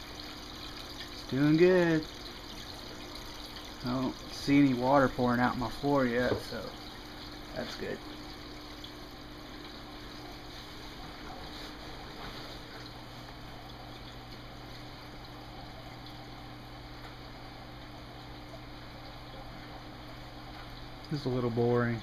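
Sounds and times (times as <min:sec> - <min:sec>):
water running into tank: 0:00.0 - 0:22.0.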